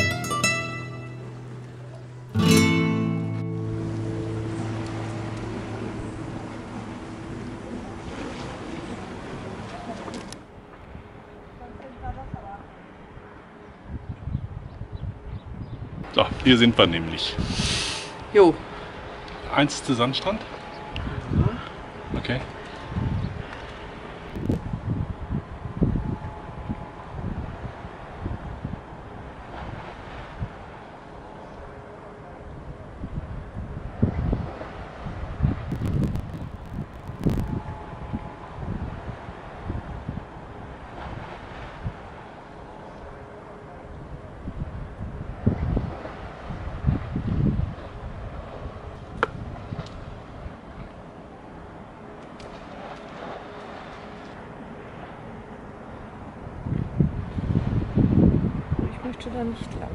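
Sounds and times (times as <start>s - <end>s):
wind buffeting microphone: 13.8s - 17.7s, 20.7s - 30.8s, 32.5s - 51.1s, 56.0s - 59.9s.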